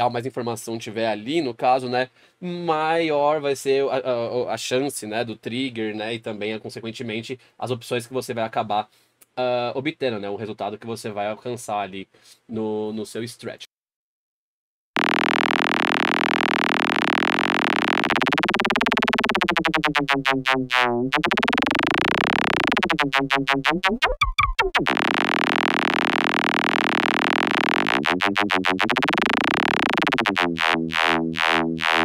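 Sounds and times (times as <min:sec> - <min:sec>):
buzzing electronic drone: 0:15.0 - 0:32.0
choppy electronic stutters: 0:15.0 - 0:32.0.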